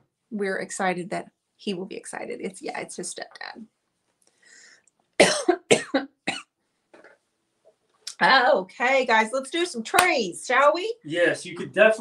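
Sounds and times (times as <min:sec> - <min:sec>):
faint breaths: 0:04.2 - 0:04.9
woman coughing: 0:05.2 - 0:06.4.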